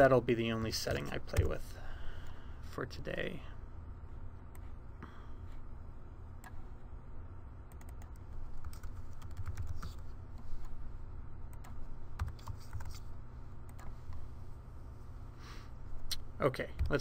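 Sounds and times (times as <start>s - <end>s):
typing on computer keyboard: 7.7s - 10.0s, 11.6s - 13.0s.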